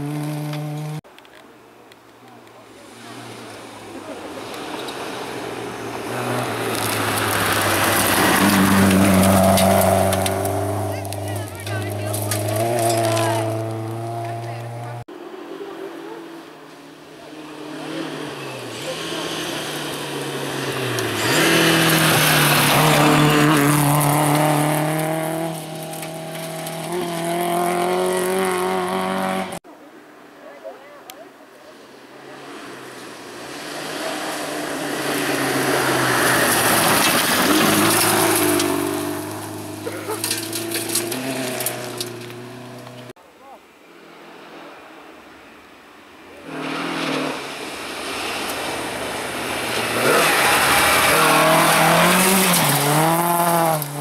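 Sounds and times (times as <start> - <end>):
rally car engines revving: 0.0 - 1.0, 2.3 - 29.6, 31.8 - 43.2, 46.3 - 54.0
tyres hissing on gravel: 46.5 - 54.0.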